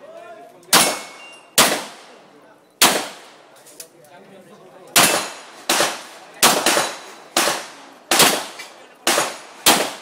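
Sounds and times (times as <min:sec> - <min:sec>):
gunshots echoing: 0:00.7 - 0:02.2, 0:02.8 - 0:03.4, 0:05.0 - 0:10.0.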